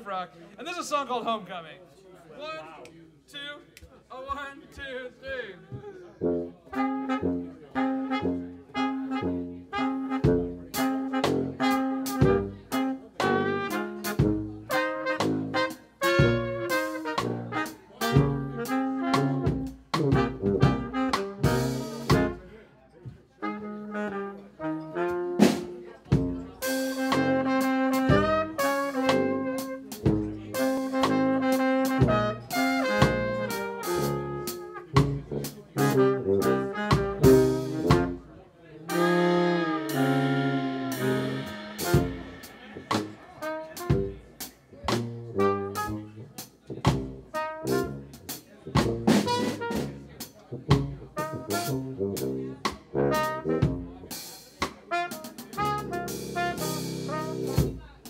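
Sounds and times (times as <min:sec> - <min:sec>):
trumpet and saxophone horn lines: 0:06.2 - 0:22.5, 0:23.4 - 0:38.3, 0:38.9 - 0:46.3, 0:46.9 - 0:48.1, 0:48.8 - 0:54.0, 0:54.9 - 0:57.8
tuba bass line: 0:06.2 - 0:22.5, 0:23.4 - 0:38.3, 0:38.9 - 0:54.1, 0:54.9 - 0:57.8
snare and cymbals: 0:09.8 - 0:22.4, 0:25.3 - 0:38.2, 0:38.9 - 0:46.0, 0:46.8 - 0:57.8.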